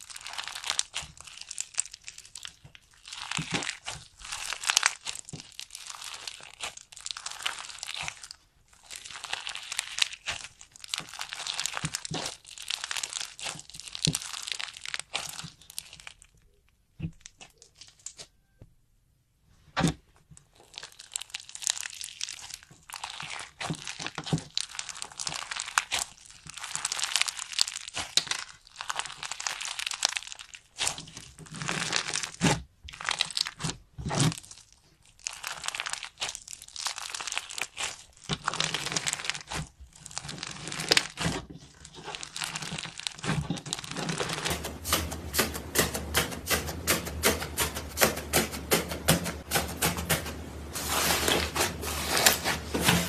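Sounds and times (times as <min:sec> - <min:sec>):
crunchy slime crackling and popping: 0:00.0 - 0:18.4, 0:20.4 - 0:47.6.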